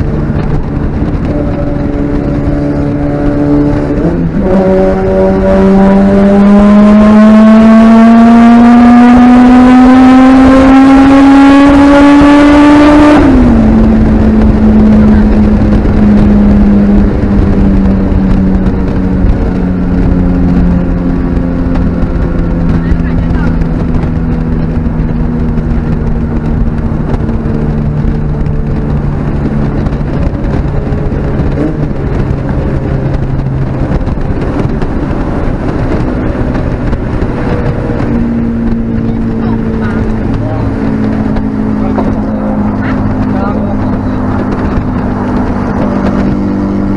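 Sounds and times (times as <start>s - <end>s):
car engine revving at full throttle: 0.0s - 46.9s
road and tyre rumble: 0.0s - 46.9s.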